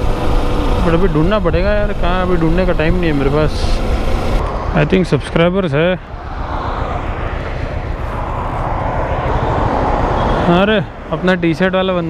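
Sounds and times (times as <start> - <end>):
low rumble: 0.0 - 11.2
highway traffic passing: 0.0 - 12.0.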